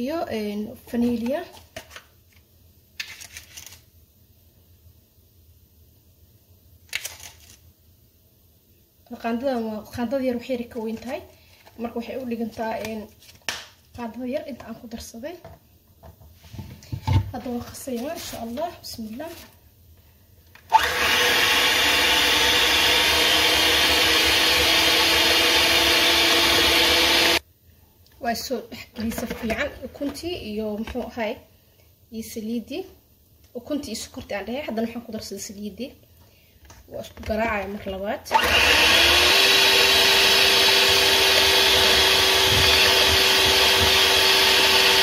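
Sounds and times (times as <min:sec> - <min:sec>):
electric hand mixer whirring: 0:20.7 - 0:27.4, 0:38.3 - 0:45.0.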